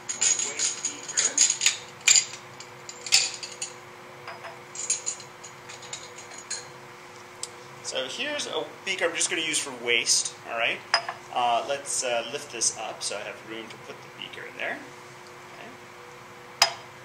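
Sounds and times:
glass beakers clinking: 0.0s - 6.7s
steady low hum: 0.0s - 17.0s.

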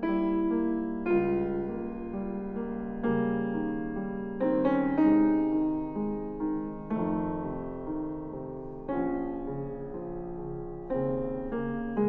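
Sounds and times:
grand piano chords: 0.0s - 12.0s.

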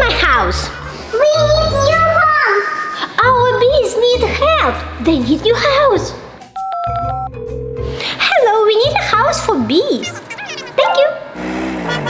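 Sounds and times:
children's background music: 0.0s - 11.4s
phone keypad tones: 6.6s - 7.4s.

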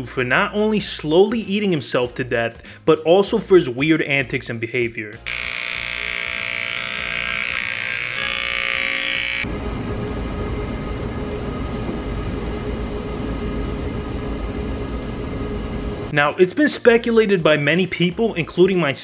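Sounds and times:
electric hair clipper buzzing: 5.2s - 10.6s
scooter electric motor whine: 5.3s - 16.1s.

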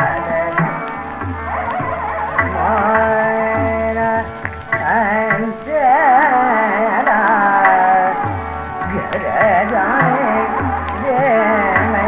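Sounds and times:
tabla strokes: 0.0s - 12.0s.

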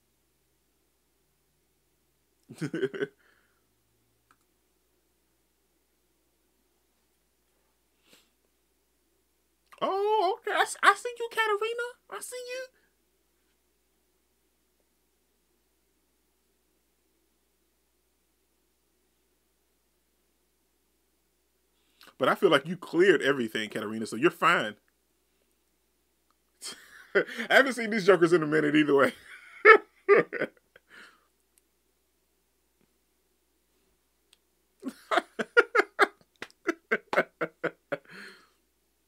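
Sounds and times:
faint hiss: 0.0s - 39.0s
man chuckling: 2.5s - 3.3s, 29.0s - 31.1s, 34.8s - 38.5s.

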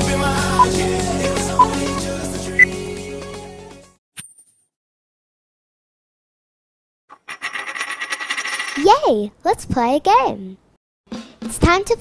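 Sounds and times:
coin spinning and rattling: 7.1s - 9.0s.

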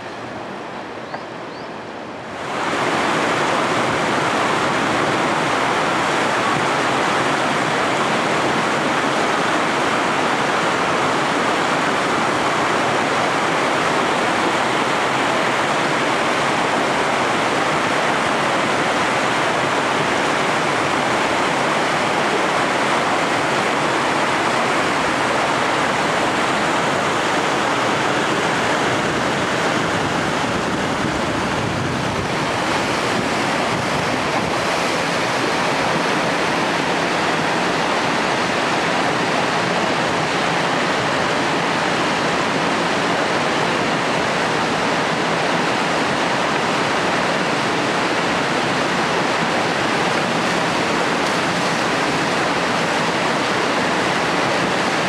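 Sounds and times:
river rapids rushing over rocks: 0.0s - 55.0s.

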